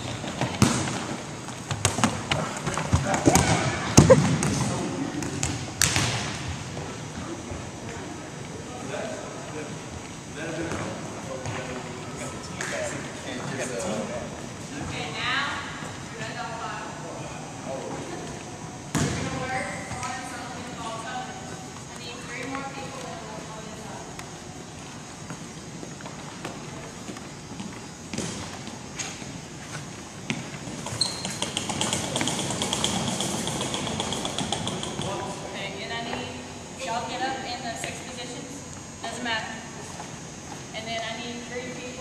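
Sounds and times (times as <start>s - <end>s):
volleyball thumps: 0.4s - 6.6s, 18.9s - 20.2s, 28.1s - 28.7s, 30.2s - 35.2s.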